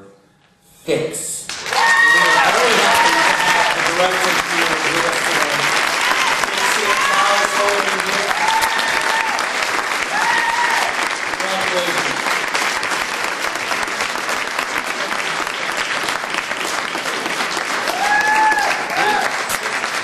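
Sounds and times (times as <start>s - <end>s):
audience applauding: 1.5s - 20.0s.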